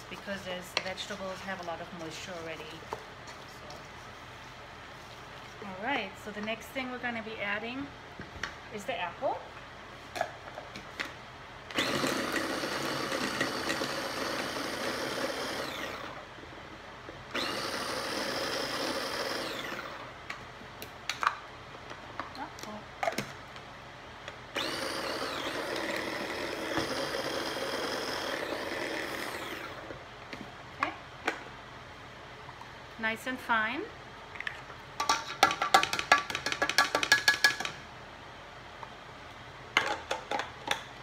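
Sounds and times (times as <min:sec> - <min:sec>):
electric food chopper running: 0:11.7 - 0:16.2, 0:17.3 - 0:20.1, 0:24.6 - 0:29.9.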